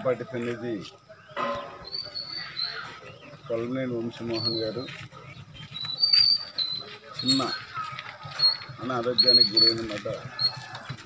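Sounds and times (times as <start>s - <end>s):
small bird chirping whistles: 1.6s - 2.8s, 5.6s - 7.6s.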